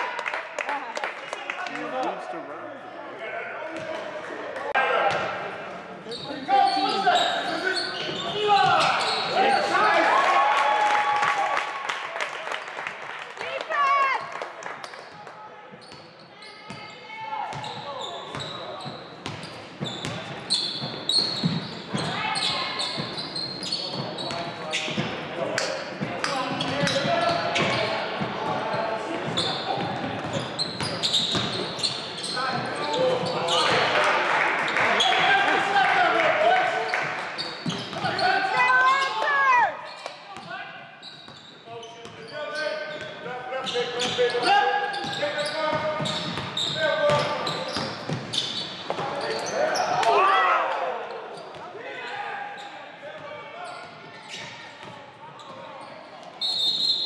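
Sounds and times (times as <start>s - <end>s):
sneakers squeaking: 6.0s - 10.0s, 14.0s - 34.0s, 36.9s - 57.0s
players shouting: 37.8s - 39.8s, 49.1s - 52.6s.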